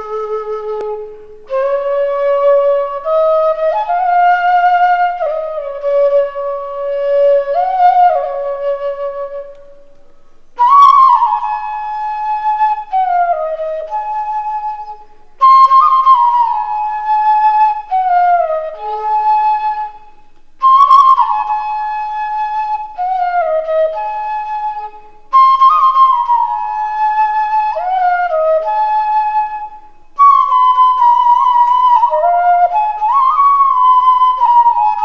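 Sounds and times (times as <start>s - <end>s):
bamboo flute melody: 0.0s - 35.0s.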